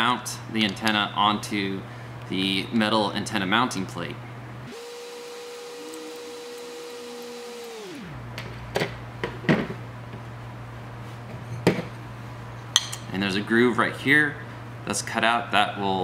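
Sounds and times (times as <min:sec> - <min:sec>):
steady hum dropping in pitch: 0:00.0 - 0:11.0.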